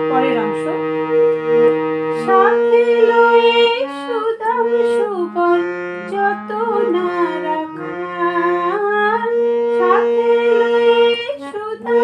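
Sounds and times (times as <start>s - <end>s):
harmonium melody: 0.0s - 12.0s.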